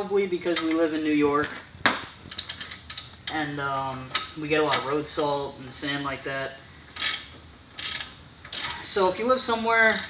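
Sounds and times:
socket ratchet clicking: 6.9 - 8.8.

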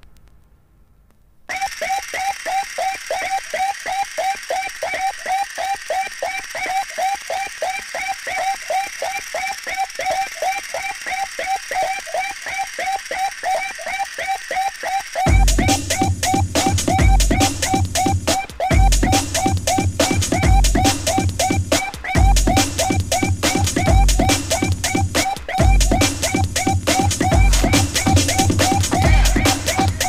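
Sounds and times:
repeating synth chirp: 10.2 - 30.0.

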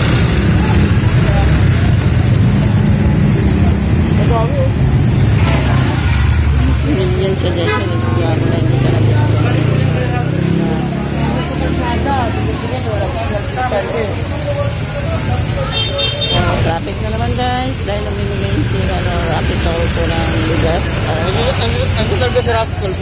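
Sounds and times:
motorcycle engines passing: 0.0 - 23.0
people's voices: 0.0 - 23.0.

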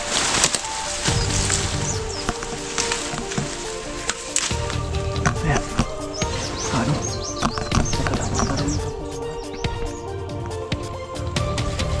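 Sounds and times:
background music low held notes: 0.0 - 12.0.

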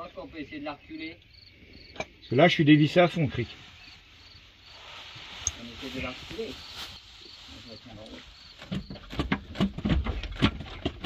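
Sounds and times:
crickets chirping: 0.0 - 10.2.

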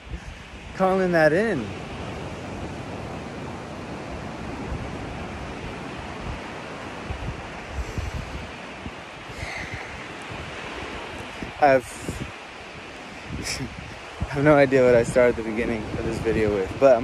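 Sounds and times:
ocean surf washing: 0.0 - 17.0
wind buffeting microphone: 0.0 - 17.0.

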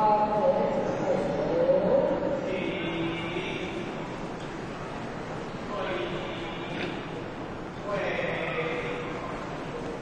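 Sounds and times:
murmur of congregation: 0.0 - 10.0.

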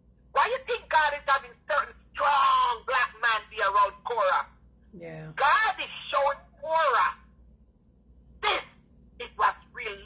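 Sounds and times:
woman talking: 4.9 - 5.4.

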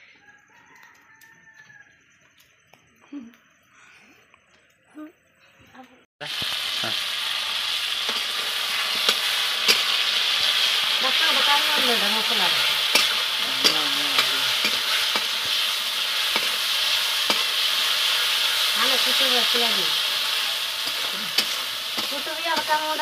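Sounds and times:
food sizzling in hot oil: 6.2 - 23.0
metal spatula scraping wok: 7.0 - 23.0.

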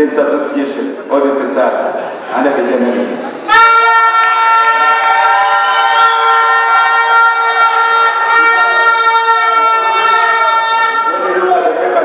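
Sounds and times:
loud steady horn-like tone: 3.5 - 11.6.

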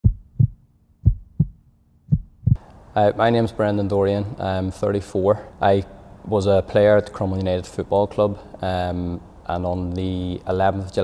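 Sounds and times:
heartbeat thumps: 0.0 - 2.6.

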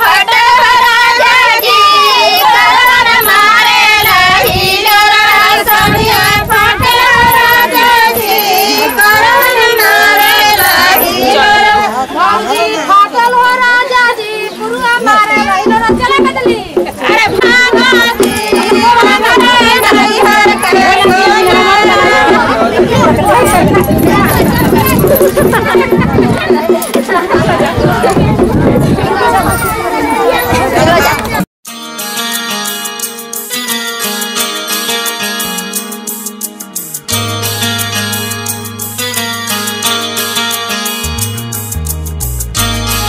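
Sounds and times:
music: 0.0 - 11.7, 13.2 - 29.1, 31.6 - 43.0
women singing together: 0.0 - 29.6
women talking over one another: 14.5 - 31.4.

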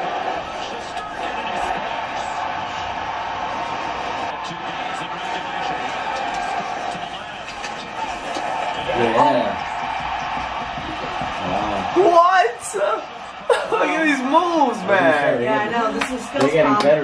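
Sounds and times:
arena crowd murmur: 0.0 - 17.0.

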